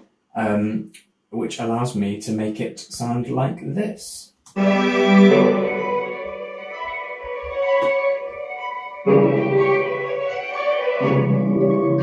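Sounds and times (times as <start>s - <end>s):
orchestral music held chords: 4.6s - 12.0s.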